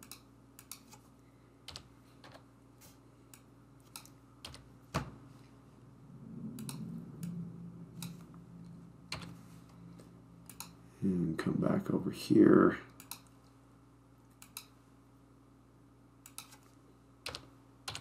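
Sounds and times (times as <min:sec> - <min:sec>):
computer keyboard keystrokes: 0:01.7 - 0:02.4, 0:10.5 - 0:10.8, 0:13.0 - 0:13.3, 0:16.3 - 0:18.0.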